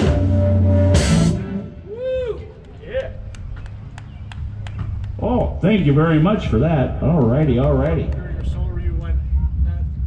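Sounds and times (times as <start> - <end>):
steady low rumble: 1.4 - 10.0.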